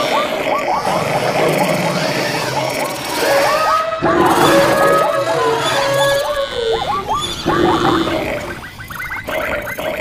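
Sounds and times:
overlapping animal calls: 0.0 - 10.0.

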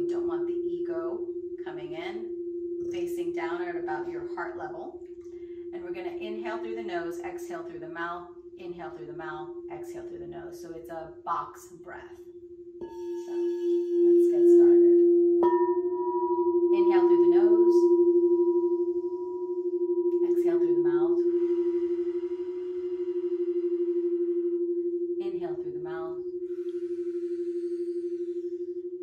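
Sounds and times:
woman speaking softly: 0.0 - 2.3, 2.9 - 5.0, 5.7 - 12.2, 14.1 - 15.0, 16.8 - 17.9, 20.2 - 21.3, 25.2 - 26.2
singing bowl low tone: 0.0 - 29.0
singing bowl struck: 1.2 - 5.7, 12.2 - 22.4.

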